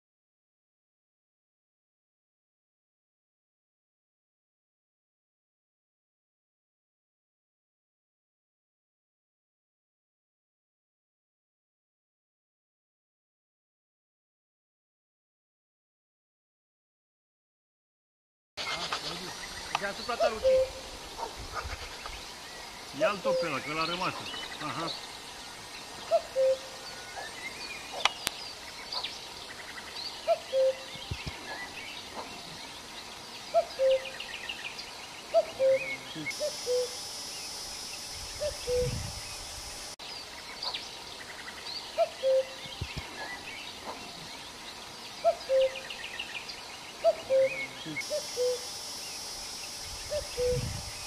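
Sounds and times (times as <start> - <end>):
higher bird chirps: 19.2 - 21.3, 22.0 - 51.0
low two-note bird call: 20.2 - 20.9, 50.1 - 50.7.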